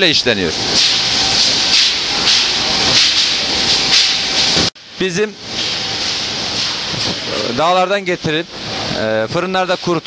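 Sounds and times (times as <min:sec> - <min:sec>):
industrial fans blowing air: 0:00.0 - 0:10.0.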